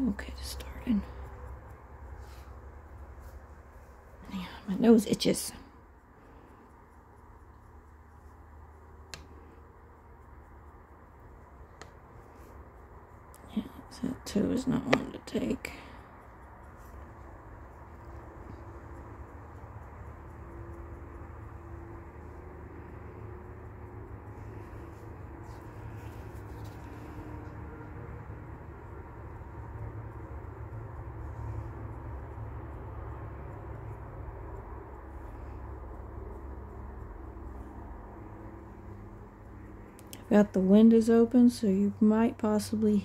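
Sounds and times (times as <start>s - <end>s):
distant highway traffic rumble: 0.0s - 43.0s.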